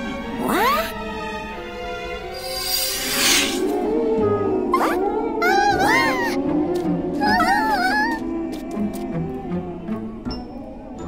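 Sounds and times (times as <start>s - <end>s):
cartoon background music: 0.0s - 11.0s
rising whoosh sound effect: 2.4s - 3.8s.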